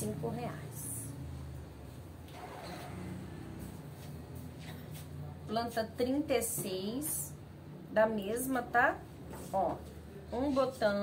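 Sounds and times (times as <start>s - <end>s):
faint engine rumble: 0.0s - 6.0s.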